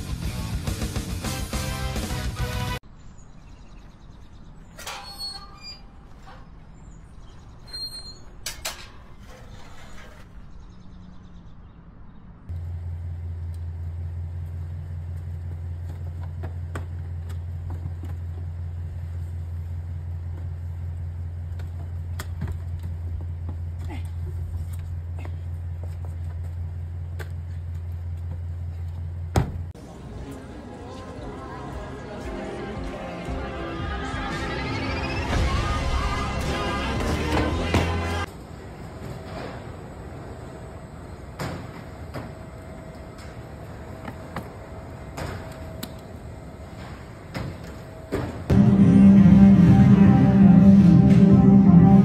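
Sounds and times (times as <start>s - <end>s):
bird chirps: 2.9s - 4.8s
metal gate knocks and squeaks: 4.8s - 6.6s, 7.6s - 10.3s
steady low hum: 35.3s - 52.0s.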